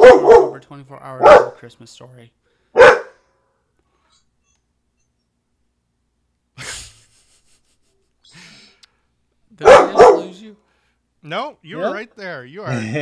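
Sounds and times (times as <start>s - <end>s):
soft breath: 10.6s - 11.1s.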